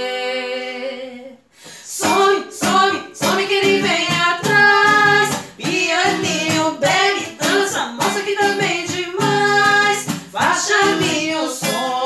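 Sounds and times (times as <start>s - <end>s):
women singing together: 0.0s - 12.0s
strummed acoustic guitar: 1.7s - 12.0s.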